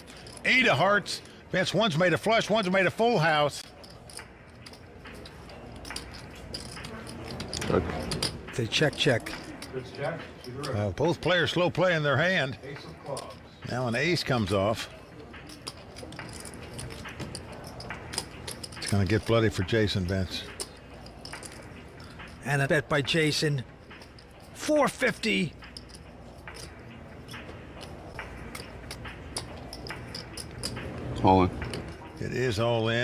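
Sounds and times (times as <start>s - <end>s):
poker chips clicking: 0.0s - 0.5s, 3.6s - 9.7s, 14.0s - 32.2s.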